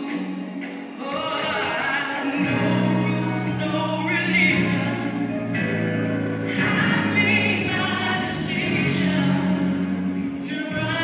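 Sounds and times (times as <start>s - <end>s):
choir singing gospel song: 0.0s - 11.0s
musical accompaniment: 0.0s - 11.0s.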